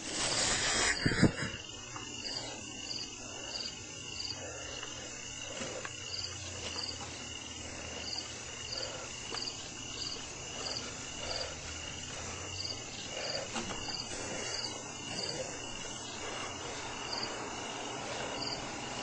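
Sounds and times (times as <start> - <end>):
recording hiss: 0.0 - 19.0
cricket chirping: 0.1 - 19.0.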